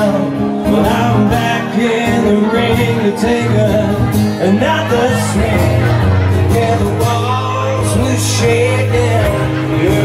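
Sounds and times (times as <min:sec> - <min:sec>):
man singing: 0:00.0 - 0:10.0
strummed acoustic guitars: 0:00.0 - 0:10.0.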